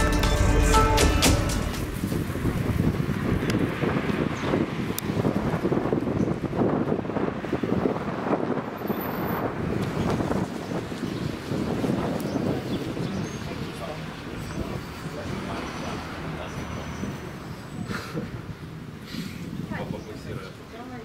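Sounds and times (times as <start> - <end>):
wind buffeting microphone: 1.6 - 21.0.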